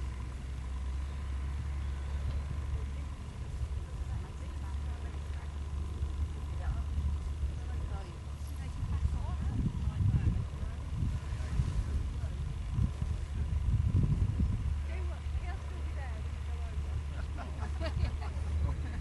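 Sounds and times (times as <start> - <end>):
wind rumbling on microphone: 0.0 - 17.1
faint distant voices: 1.0 - 14.0.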